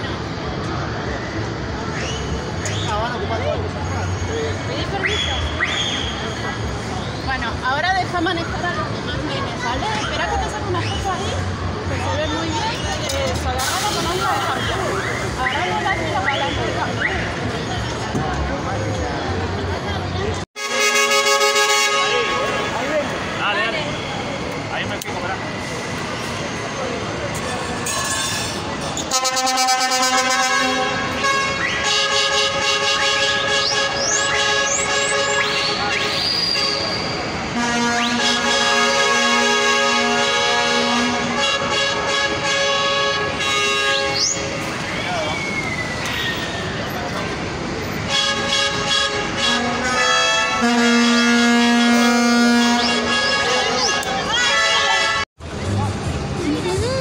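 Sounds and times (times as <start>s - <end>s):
crowd voices: 0.0s - 57.0s
bus horns blasting: 20.6s - 24.1s, 27.5s - 44.8s, 47.8s - 55.3s.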